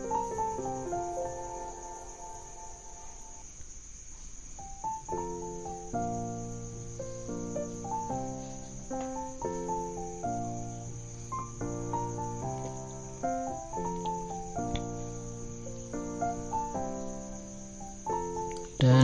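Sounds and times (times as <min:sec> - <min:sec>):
steady high-pitched hiss: 0:00.0 - 0:19.0.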